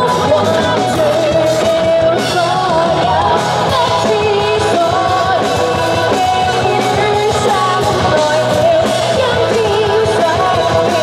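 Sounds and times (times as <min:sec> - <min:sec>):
rock band playing: 0:00.0 - 0:11.0
woman singing into microphone: 0:00.0 - 0:11.0.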